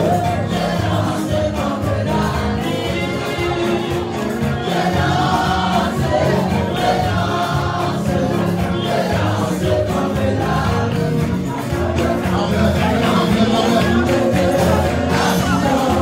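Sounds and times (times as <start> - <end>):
choir singing gospel song: 0.0 - 16.0.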